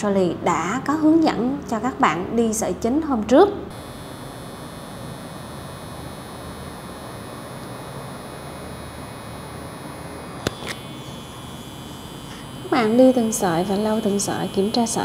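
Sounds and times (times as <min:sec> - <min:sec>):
tattoo machine pen buzzing: 0:03.7 - 0:15.0.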